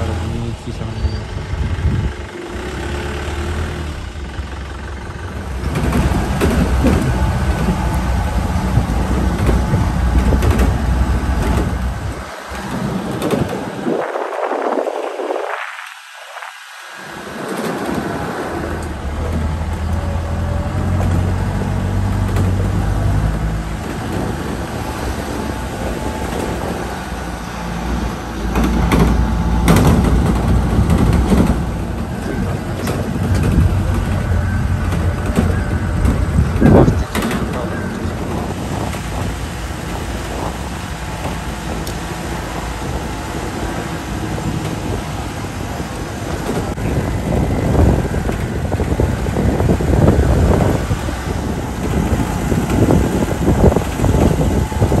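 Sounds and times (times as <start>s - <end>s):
vehicle engine rumbling: 0.0s - 55.0s.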